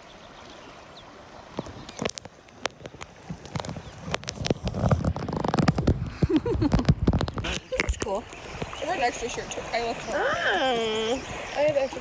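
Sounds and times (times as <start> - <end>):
clicks knocks and scrapes: 1.5 - 8.1.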